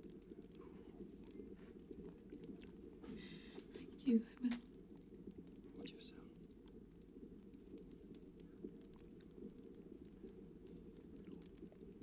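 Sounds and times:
faint clicks: 0.0s - 12.0s
low steady background hum: 0.0s - 12.0s.

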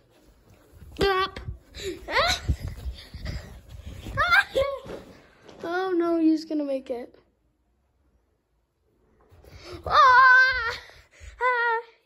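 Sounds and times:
child's high-pitched cries: 9.8s - 11.8s.

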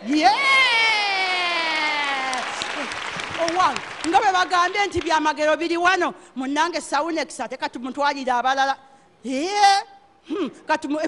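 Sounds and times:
congregation clapping: 1.8s - 5.4s.

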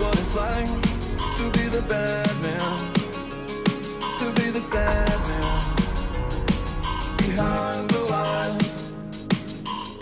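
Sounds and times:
deep sub-bass: 0.0s - 10.0s
electronic dance music: 0.0s - 10.0s
synth melody: 0.0s - 10.0s.

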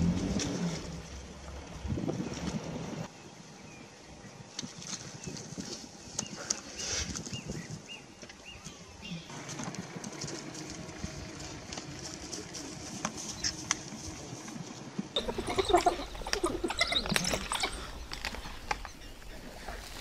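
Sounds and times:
low rumbling and rustling: 0.0s - 3.1s
high chirping animal calls: 15.2s - 19.6s.

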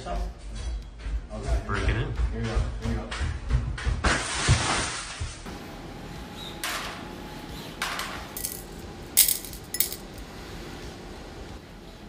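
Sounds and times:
screws dropping into glass jar: 8.3s - 10.1s.

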